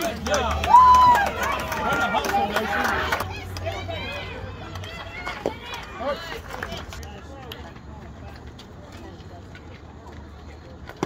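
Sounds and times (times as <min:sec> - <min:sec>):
people calling and shouting: 0:00.0 - 0:11.0.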